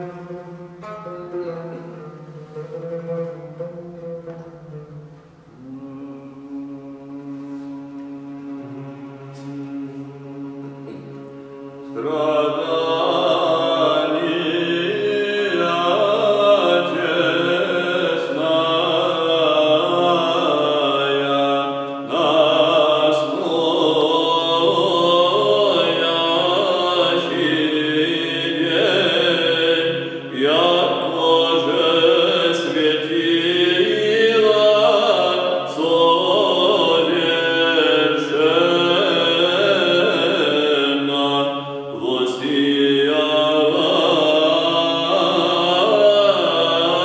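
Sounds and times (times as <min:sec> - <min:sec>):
men chanting a hymn: 0:09.4 - 0:47.0.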